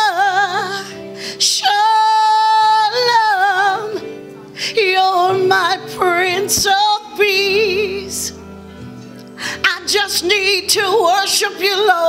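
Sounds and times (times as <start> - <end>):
woman singing gospel song: 0.0 - 8.4, 9.5 - 12.0.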